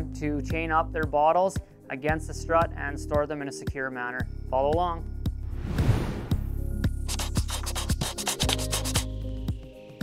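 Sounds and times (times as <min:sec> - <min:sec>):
scratchy pencil-like strokes: 0:07.1 - 0:09.1.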